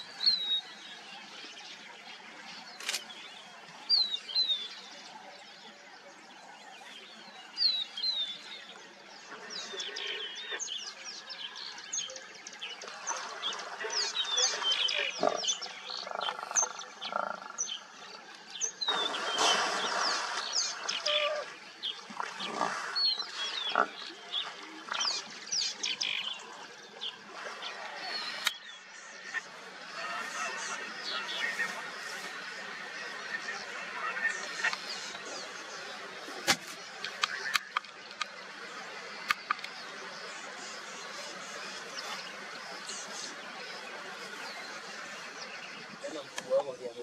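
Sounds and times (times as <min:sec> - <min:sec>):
birds chirping: 0:00.0 - 0:47.0
heavy splashing in water: 0:18.9 - 0:21.4.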